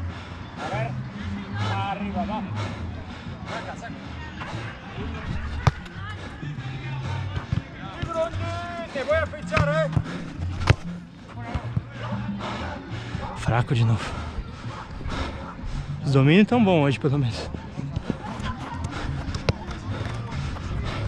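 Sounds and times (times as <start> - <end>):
background music: 0.0 - 21.0
players shouting: 4.2 - 10.3
football kicks: 5.3 - 6.1, 9.4 - 11.9, 17.9 - 20.8.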